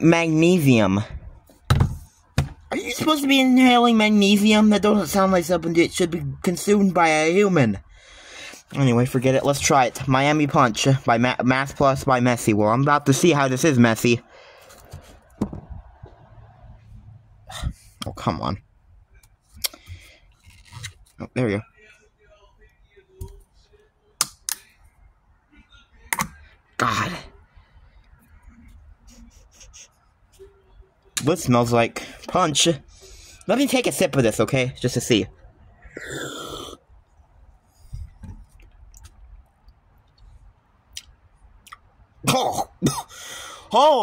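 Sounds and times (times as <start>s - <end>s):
slurping gulp: 35.9s - 36.9s
small mouth clicks: 40.9s - 41.9s.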